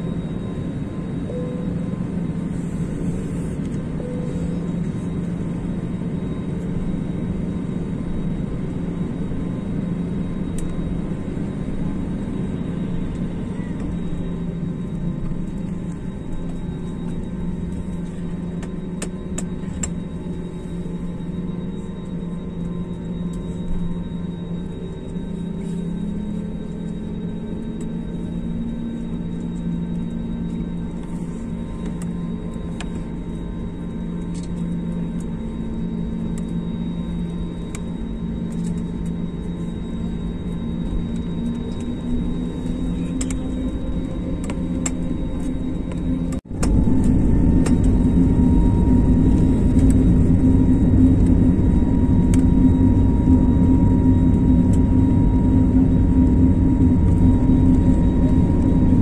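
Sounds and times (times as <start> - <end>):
jet engines humming and whining: 0.0 - 59.0.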